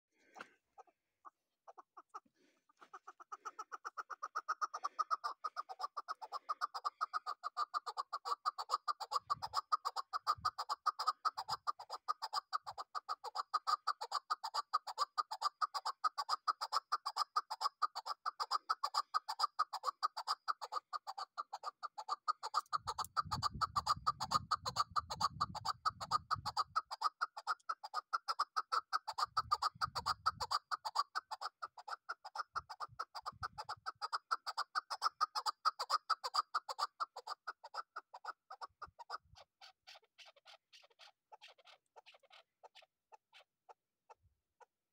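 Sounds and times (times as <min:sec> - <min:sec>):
partridge calling: 0:00.2 - 0:43.5.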